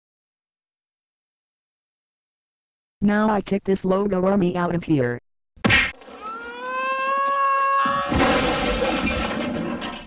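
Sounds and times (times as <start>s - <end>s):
cartoon scream: 6.1s - 9.0s
glass shattering: 7.8s - 10.0s.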